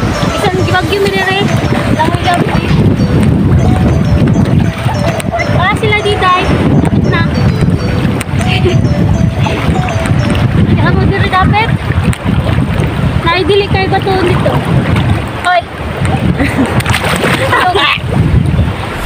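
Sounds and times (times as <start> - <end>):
voices talking: 0.0 - 11.8, 13.2 - 14.8
wind buffeting microphone: 0.0 - 19.0.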